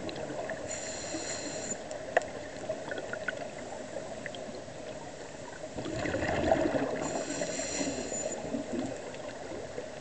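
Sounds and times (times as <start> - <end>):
hissing regulator inhalation: 0.7 - 1.8, 7.0 - 8.5
exhaled bubbles gurgling: 2.4 - 10.0.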